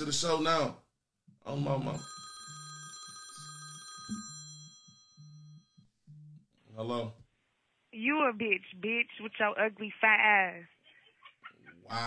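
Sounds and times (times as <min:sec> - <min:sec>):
high ringing phone chime: 0:01.8 - 0:06.3
low pulsing phone tone: 0:01.9 - 0:06.5.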